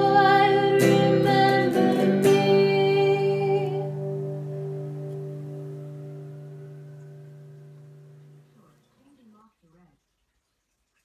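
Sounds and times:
guitar chord ringing out: 0:00.0 - 0:08.6.

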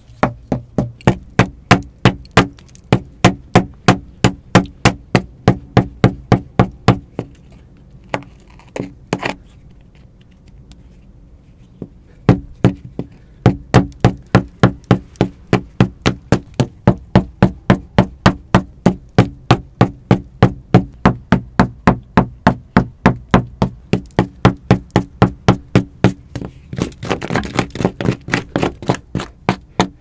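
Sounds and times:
blows against brick wall: 0:11.8 - 0:30.0.

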